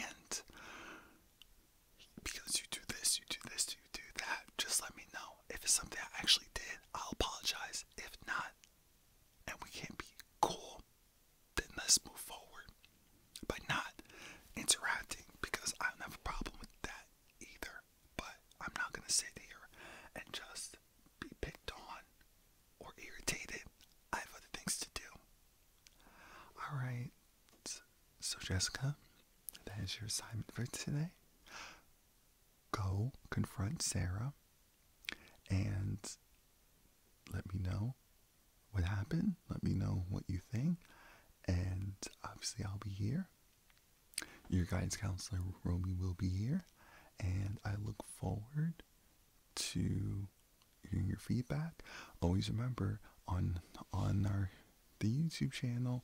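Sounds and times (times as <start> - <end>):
man whispering: 0.0 - 1.1, 2.0 - 8.7, 9.4 - 10.9, 11.5 - 22.2, 22.8 - 31.9, 32.7 - 34.4, 35.0 - 36.3, 37.2 - 38.0, 38.7 - 43.4, 44.1 - 48.9, 49.5 - 56.0.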